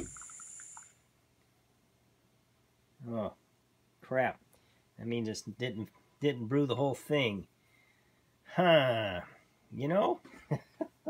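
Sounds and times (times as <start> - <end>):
gas stove hissing: 0.0 - 0.9
faint ticks: 0.0 - 1.0.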